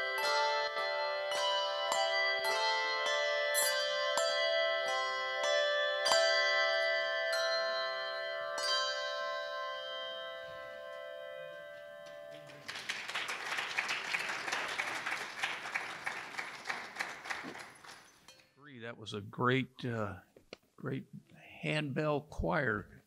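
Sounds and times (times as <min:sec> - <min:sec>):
handbell choir chords: 0:00.0 - 0:16.2
audience applause: 0:12.3 - 0:18.1.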